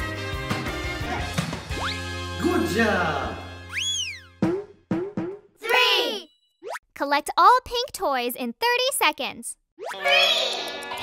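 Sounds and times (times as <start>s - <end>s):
children's background music: 9.8s - 11.0s.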